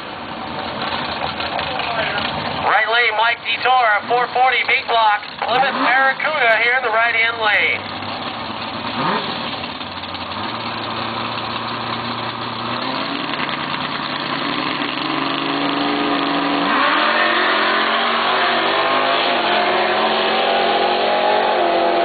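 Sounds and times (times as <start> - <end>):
drag car engines revving: 0.0 - 22.0.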